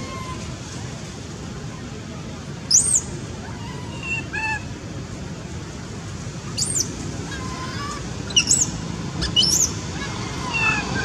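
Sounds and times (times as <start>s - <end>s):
steady background hiss: 0.0s - 11.0s
baby monkey high-pitched calls: 2.7s - 3.0s, 6.6s - 11.0s.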